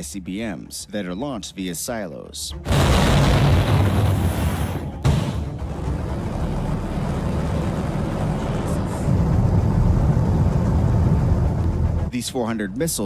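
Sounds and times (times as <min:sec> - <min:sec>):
rocket launch rumble: 0:02.7 - 0:12.0.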